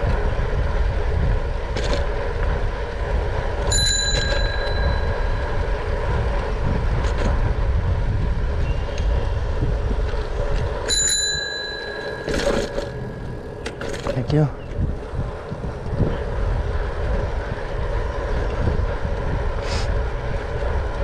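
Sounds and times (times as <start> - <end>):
wind rumble on microphone: 0.0 - 21.0
bicycle bell ringing: 3.6 - 6.0, 10.8 - 13.6.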